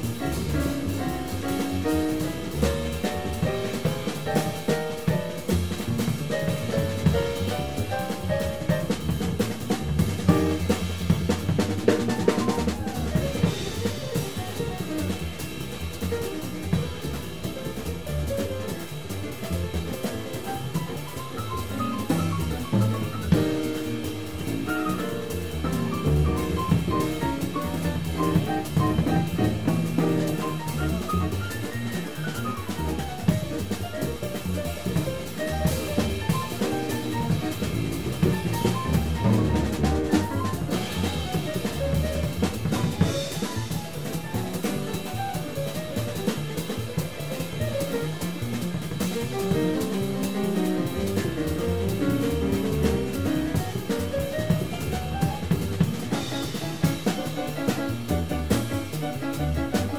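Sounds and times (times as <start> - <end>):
double bass: 0.0 - 59.9
drum kit: 0.0 - 59.9
grand piano soloing: 0.0 - 59.9.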